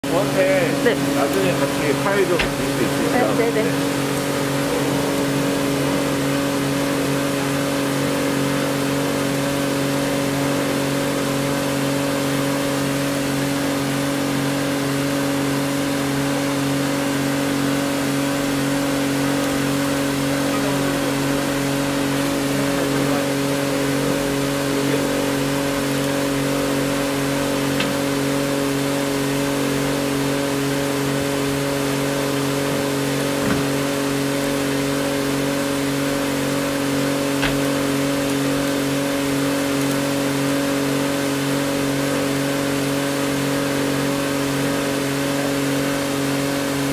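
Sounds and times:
street sweeper machine hum: 0.0 - 46.9.

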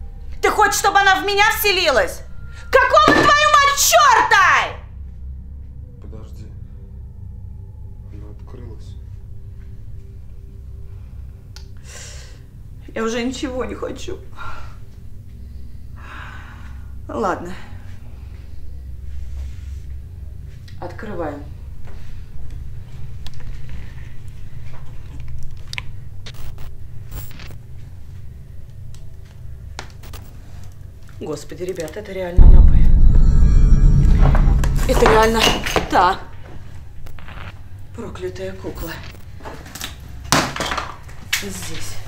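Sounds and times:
faint held tone: 32.4 - 35.7
low steady hum: 32.4 - 36.2
low steady rumble: 32.4 - 36.2.

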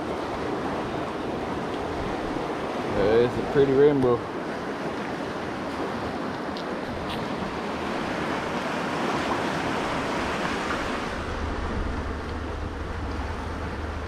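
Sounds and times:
river water rushing over rocks: 0.0 - 14.0
low rumble: 10.9 - 14.0.

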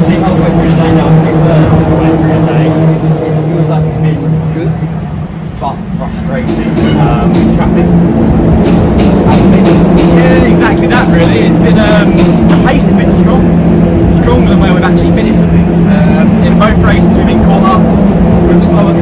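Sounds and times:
man speaking: 0.0 - 8.0, 9.3 - 19.0
race car engines droning: 0.0 - 19.0.

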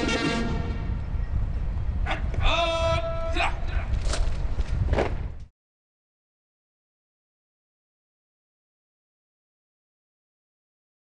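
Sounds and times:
man shouting drill command: 2.1 - 3.9.

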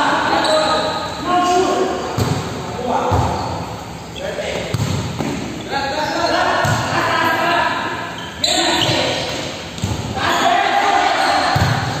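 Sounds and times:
players shouting and calling: 5.6 - 12.0.

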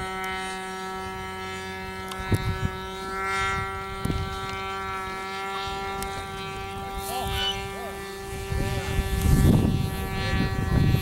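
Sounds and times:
model plane motor droning: 0.0 - 11.0.

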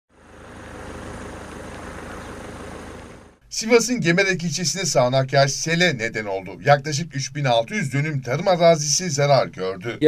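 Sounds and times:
motor rumbling: 0.1 - 3.4.

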